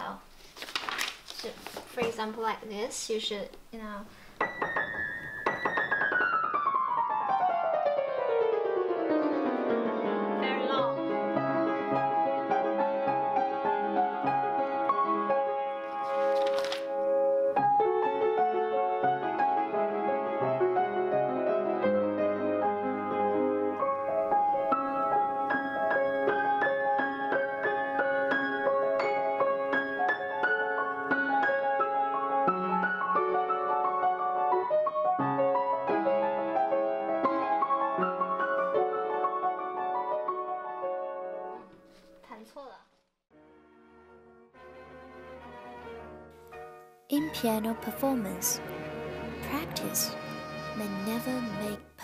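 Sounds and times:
upright piano played fast: 4.3s - 41.6s, 43.4s - 52.0s.

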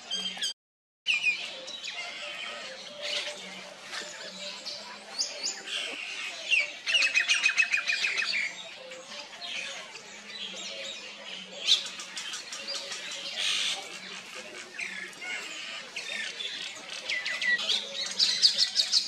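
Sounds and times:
wild birds chirping: 1.1s - 19.0s.

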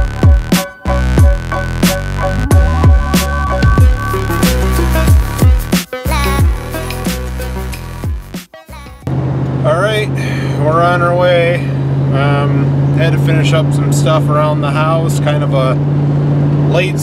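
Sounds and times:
vehicle engine and road noise: 9.0s - 17.0s
man talking: 9.6s - 15.8s, 16.7s - 17.0s.

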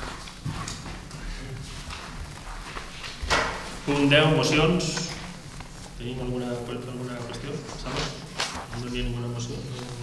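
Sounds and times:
paper being shuffled: 0.0s - 10.0s.

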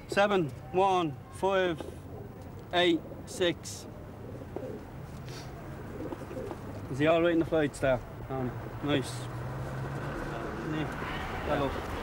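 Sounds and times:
pigeons cooing: 1.7s - 7.6s
soft rustle: 4.7s - 8.1s.

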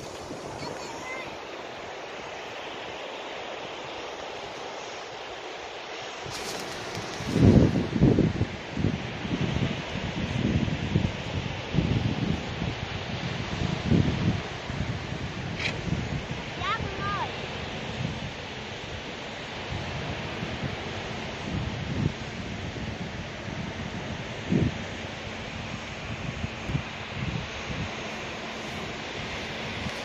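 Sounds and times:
wind buffeting microphone: 0.0s - 2.9s, 6.1s - 30.0s
ocean surf breaking: 0.0s - 11.9s, 12.6s - 30.0s.

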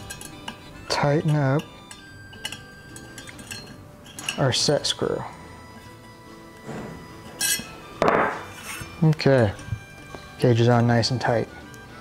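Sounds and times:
metal tool clinks and knocks: 0.0s - 4.6s, 7.3s - 10.9s.

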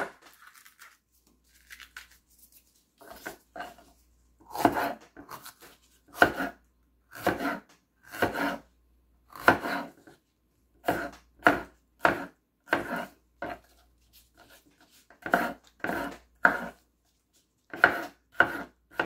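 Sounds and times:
knife slicing on cutting board: 4.5s - 6.6s, 7.2s - 8.6s, 9.4s - 10.0s, 10.8s - 13.8s, 14.4s - 16.8s, 17.7s - 19.0s.

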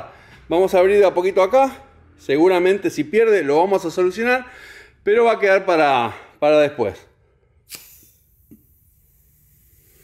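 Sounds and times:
air hissing: 7.6s - 10.0s
valve clicking: 7.6s - 10.0s.

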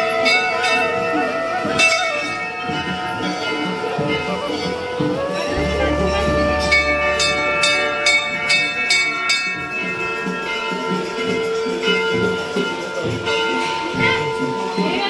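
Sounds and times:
brass bells ringing: 0.0s - 15.0s.

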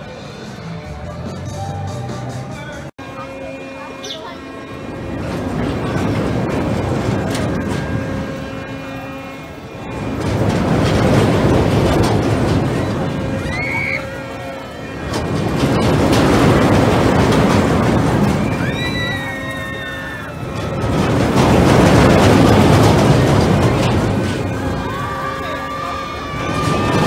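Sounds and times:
rumble of wheels on track: 0.0s - 27.0s
riders screaming: 18.5s - 20.5s.

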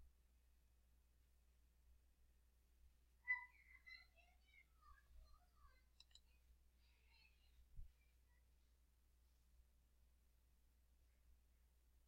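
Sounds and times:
faint high chirping: 3.2s - 8.8s
computer mouse clicks: 6.0s - 6.3s.

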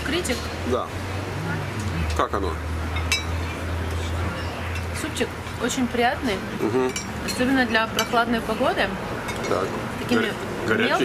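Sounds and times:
cutlery clinking on dish: 3.0s - 3.4s, 6.8s - 8.2s, 9.3s - 9.7s.

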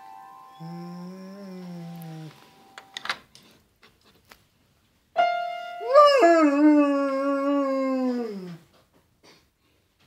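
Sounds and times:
dog howling: 0.6s - 2.4s, 5.8s - 8.6s.

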